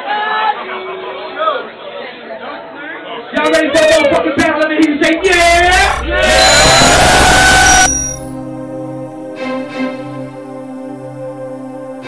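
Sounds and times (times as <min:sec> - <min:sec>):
soft ambient music: 0:05.2 - 0:12.0.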